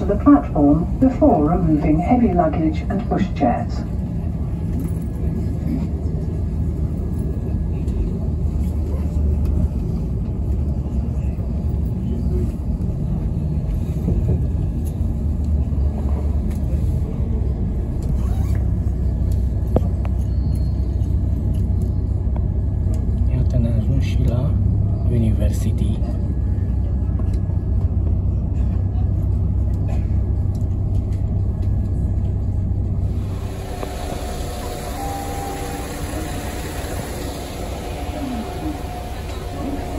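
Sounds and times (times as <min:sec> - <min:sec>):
train rumbling on track: 0:00.0 - 0:39.9.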